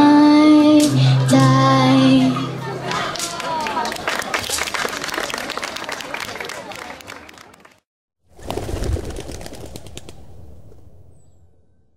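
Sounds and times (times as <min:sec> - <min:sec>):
low murmur of crowd: 0:00.0 - 0:07.8
crowd clapping: 0:02.8 - 0:07.8.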